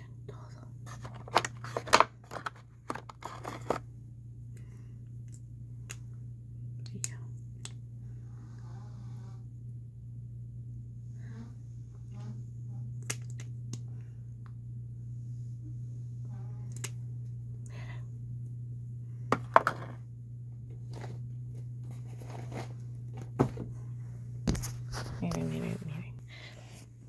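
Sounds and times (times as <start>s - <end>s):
woman whispering: 0.0s - 0.8s, 6.8s - 7.4s, 25.2s - 26.2s
steady low hum: 0.0s - 27.0s.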